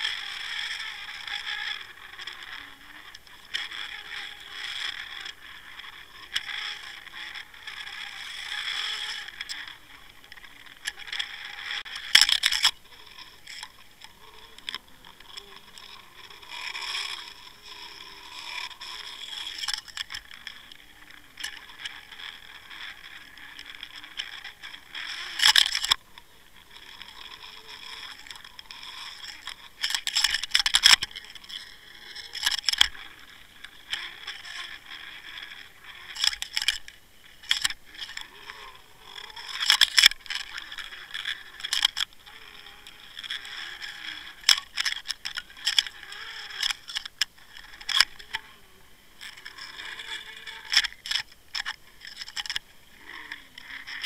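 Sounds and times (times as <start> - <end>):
camera rig scraping underwater: 0.0 - 54.0.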